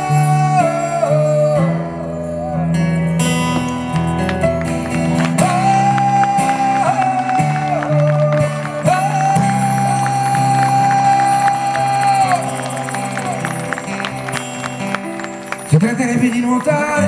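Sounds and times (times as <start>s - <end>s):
man singing held wordless notes: 0.0s - 2.2s, 5.4s - 12.6s, 15.7s - 17.0s
strummed acoustic guitar: 0.0s - 17.0s.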